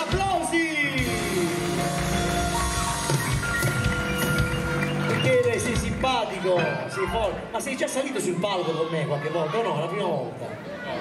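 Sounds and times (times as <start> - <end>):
live band playing: 0.0 - 7.9.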